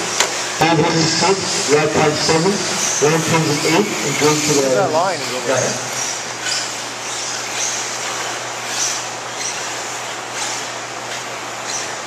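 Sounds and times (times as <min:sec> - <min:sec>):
rc cars racing on dirt: 0:00.6 - 0:12.0.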